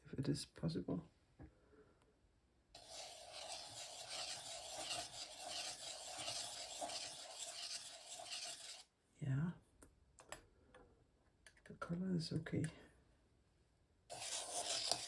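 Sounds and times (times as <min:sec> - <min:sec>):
pen nib scratching on paper: 0:02.8 - 0:08.8, 0:14.1 - 0:15.0.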